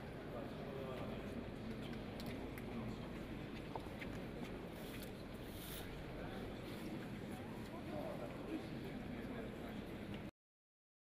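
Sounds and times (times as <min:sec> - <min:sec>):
faint indistinct voices: 0:00.0 - 0:10.3.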